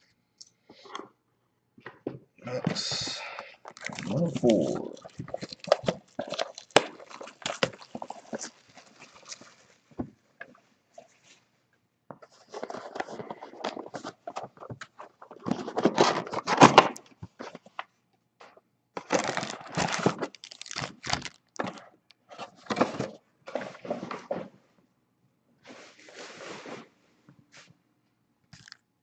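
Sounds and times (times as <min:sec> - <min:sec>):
foil packs crinkling and rustling: 0:03.6 - 0:09.8, 0:12.4 - 0:17.0, 0:19.0 - 0:24.1.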